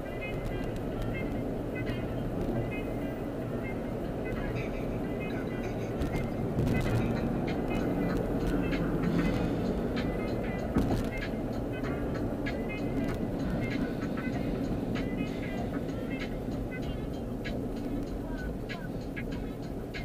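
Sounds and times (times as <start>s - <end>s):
car road and engine noise: 0.0s - 20.0s
music playing: 0.0s - 20.0s.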